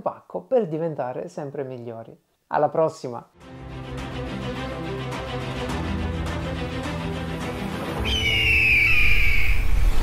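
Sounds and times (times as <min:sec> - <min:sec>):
theme music: 0:03.4 - 0:10.0
bird of prey screech effect: 0:08.0 - 0:10.0.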